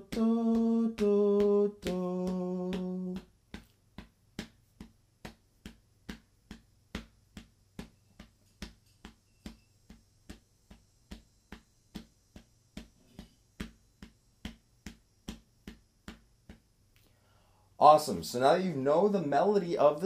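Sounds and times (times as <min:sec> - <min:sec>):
hand pats on chest: 0:00.1 - 0:17.1.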